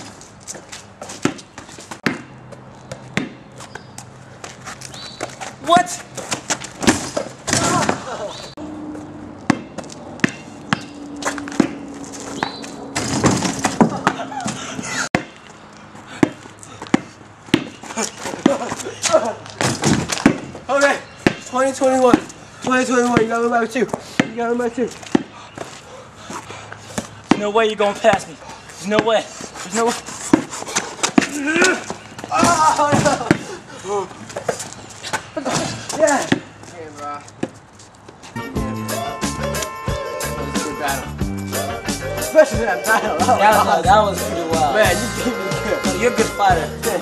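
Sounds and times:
basketball bouncing: 1.2 - 3.4, 9.4 - 14.5, 15.1 - 15.5, 16.1 - 18.7, 19.6 - 20.6, 22.1 - 23.4
basketball bouncing on court: 9.4 - 10.9
voices: 31.1 - 37.3, 38.4 - 47.0
person grunting: 31.2 - 32.6.

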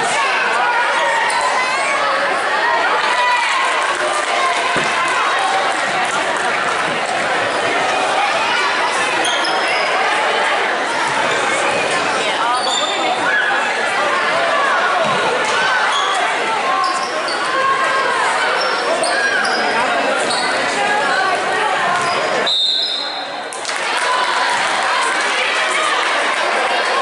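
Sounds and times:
spectators chatting: 0.0 - 27.0
referee's whistle: 22.1 - 23.3.

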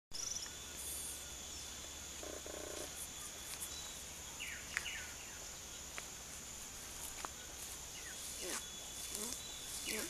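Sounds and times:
high-pitched insect drone: 0.2 - 4.0
frog croak: 2.2 - 3.0.

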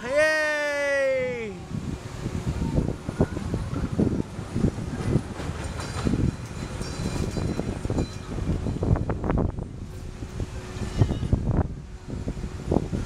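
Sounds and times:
wind on microphone: 1.2 - 13.0
roller coaster rattling on track: 1.7 - 13.0.

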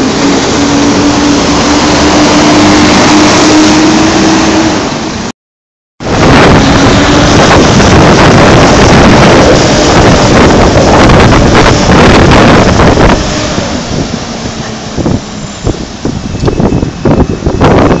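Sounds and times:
bus pulling away: 0.0 - 5.3
wind buffeting microphone: 6.0 - 18.0.

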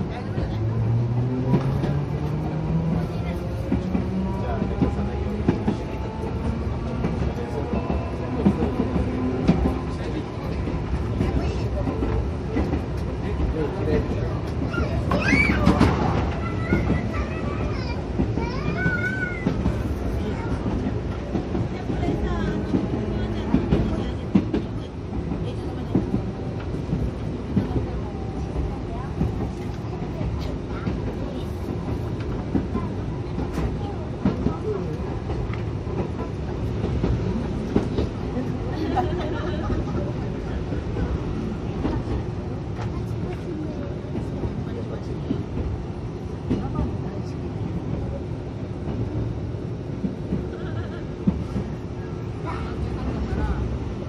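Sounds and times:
tram rumbling in motion: 0.0 - 54.0.

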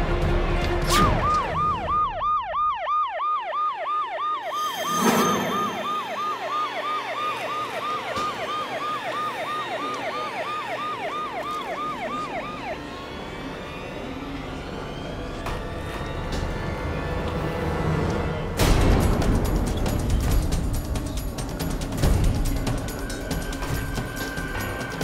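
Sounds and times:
police siren yelp: 0.9 - 17.1
sharp hit: 4.6 - 6.3.

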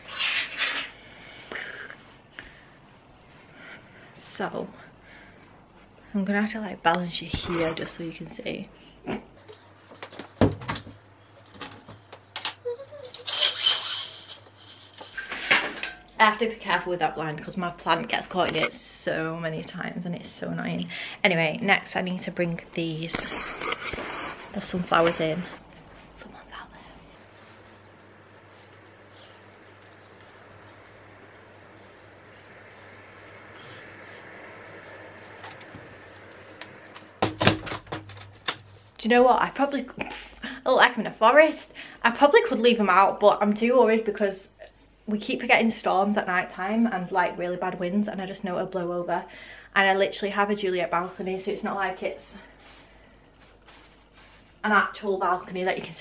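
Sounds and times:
faint outdoor background: 0.0 - 56.0
flower pots knocking and clattering: 27.3 - 38.9
venetian blind clicks and knocks: 34.0 - 38.8.

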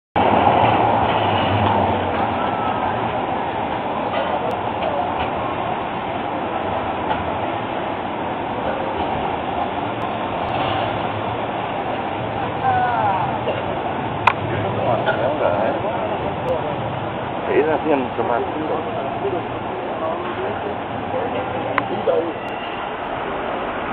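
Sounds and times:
city street noise hiss: 0.2 - 23.9
tram passing: 0.2 - 23.9
people's voices: 12.4 - 23.2.

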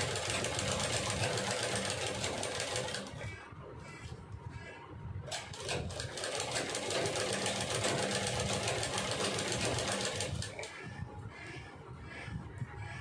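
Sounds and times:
sewing machine stitching: 0.0 - 3.1, 5.3 - 10.7.

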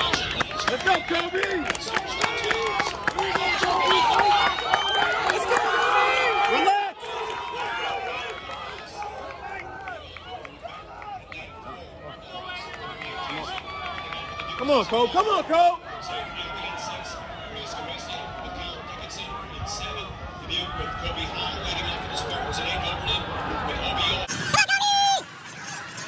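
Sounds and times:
crowd chatter: 0.0 - 26.0
crowd shouting and cheering: 0.0 - 26.0.

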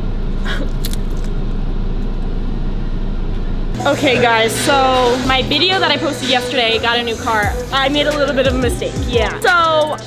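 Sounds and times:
car engine idling: 0.0 - 10.0
person laughing: 0.4 - 1.0.

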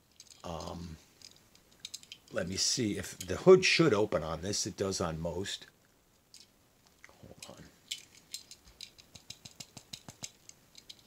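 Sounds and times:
toy car clicks and rattles: 0.1 - 2.4, 7.4 - 11.0.

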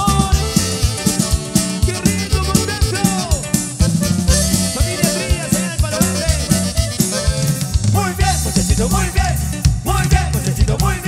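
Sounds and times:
saxophone: 0.0 - 7.9
accordion melody: 0.0 - 9.9
cumbia band playing: 0.0 - 11.0.

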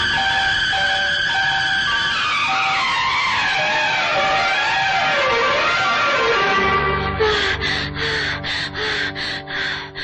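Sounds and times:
rhythmic breathy panting: 6.7 - 10.0.

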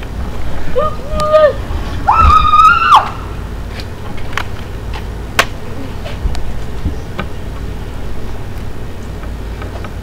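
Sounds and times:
high-pitched wordless cries: 0.7 - 3.4.

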